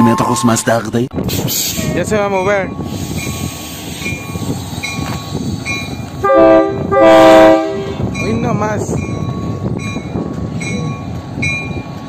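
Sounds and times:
diesel locomotive running: 0:00.0 - 0:12.0
locomotive air horn blasts: 0:06.2 - 0:08.0.

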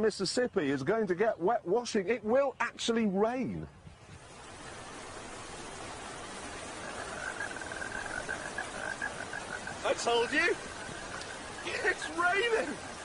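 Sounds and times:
steady rain falling: 0:00.1 - 0:13.0
frog trilling: 0:06.6 - 0:13.0.

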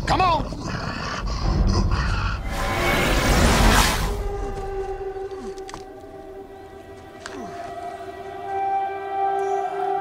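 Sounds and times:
dramatic film score: 0:00.0 - 0:10.0
rushing sound effect: 0:02.4 - 0:04.5.

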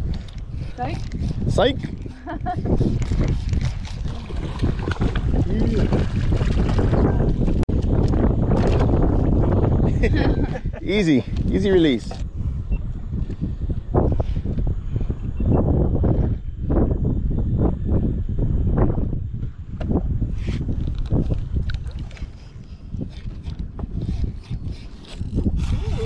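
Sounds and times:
wind buffeting microphone: 0:00.0 - 0:26.0
water slapping boat hull: 0:02.4 - 0:09.6.

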